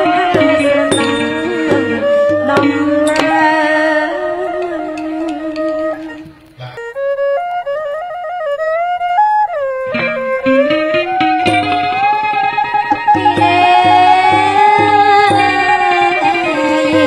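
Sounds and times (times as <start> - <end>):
drum beat: 0.0 - 3.5, 11.0 - 17.0
ornamented melody instrument: 0.0 - 17.0
traditional ensemble playing: 0.0 - 17.0.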